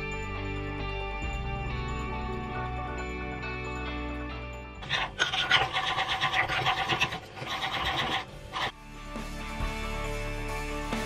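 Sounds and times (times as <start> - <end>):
background music: 0.0 - 11.0
metal spoon scraping ceramic bowl: 4.8 - 8.7.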